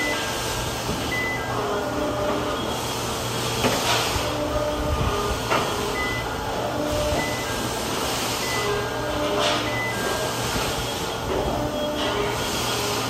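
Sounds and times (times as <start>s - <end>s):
forklift running: 0.0s - 13.0s.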